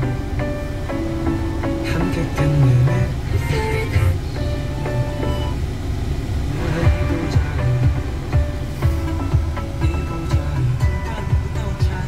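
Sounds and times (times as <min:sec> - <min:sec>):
low rumble of vehicle: 0:00.0 - 0:12.0
music from car radio: 0:00.0 - 0:12.0.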